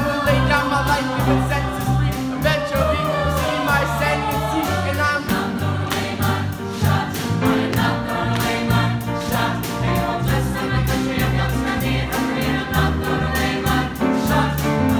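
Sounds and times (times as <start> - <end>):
choir singing: 0.0 - 14.9.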